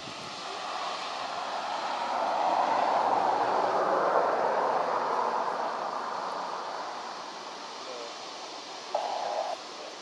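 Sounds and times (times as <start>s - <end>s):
jet engines rushing: 0.0s - 10.0s.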